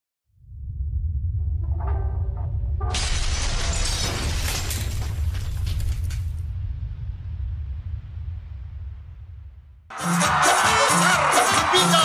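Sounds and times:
low rumble: 0.3 - 9.9
wall shattering crash: 2.9 - 6.5.

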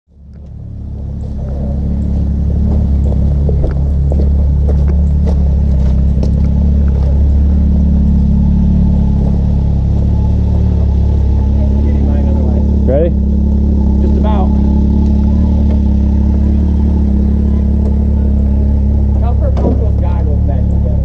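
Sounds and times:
engine idling: 0.1 - 21.0.

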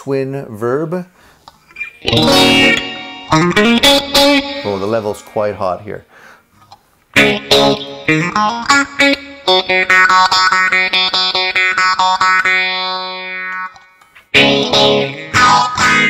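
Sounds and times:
clean electric guitar: 1.6 - 5.7, 7.1 - 16.0.

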